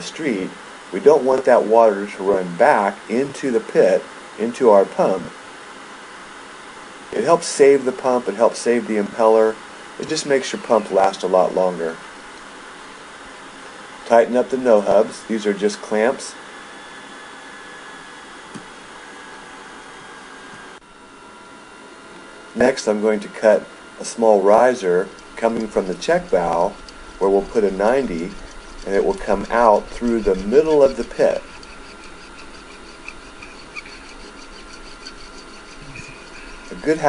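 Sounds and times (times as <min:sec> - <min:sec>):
light hum: 0:22.1 - 0:37.0
steady faint hiss: 0:22.6 - 0:37.0
hacksaw cutting plastic pipe: 0:25.4 - 0:37.0.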